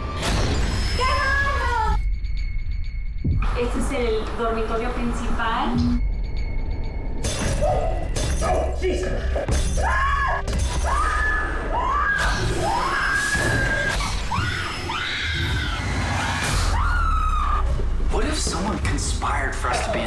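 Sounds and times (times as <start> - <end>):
people screaming: 9.8 - 17.8.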